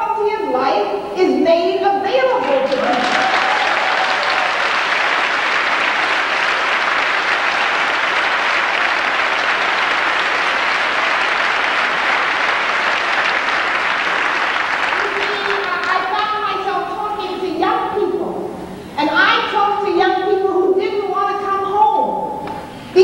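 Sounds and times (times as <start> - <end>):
congregation clapping: 2.4 - 16.5.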